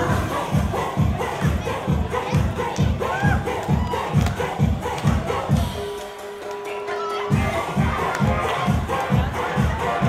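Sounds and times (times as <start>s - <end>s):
crowd shouting and cheering: 0.0s - 10.0s
dance music with bass-drum beat: 0.0s - 10.0s.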